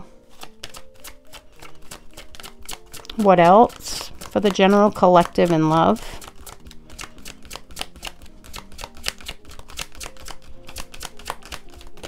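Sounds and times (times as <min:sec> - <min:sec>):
cards being shuffled: 0:00.0 - 0:12.0
soft background music: 0:00.0 - 0:12.0.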